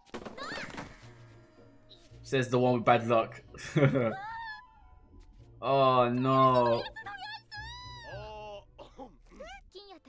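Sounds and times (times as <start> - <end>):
faint background music: 0.2 - 10.0.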